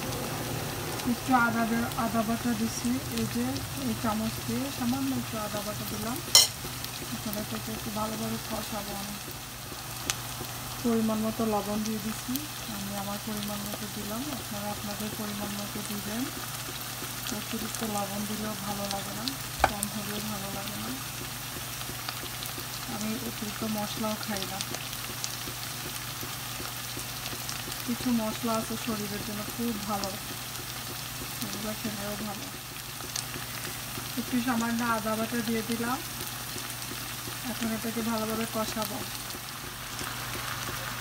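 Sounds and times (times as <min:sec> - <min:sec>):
food sizzling in a frying pan: 0:00.0 - 0:41.0
small pops of hot oil: 0:05.9 - 0:10.8, 0:16.2 - 0:28.4, 0:29.1 - 0:37.7.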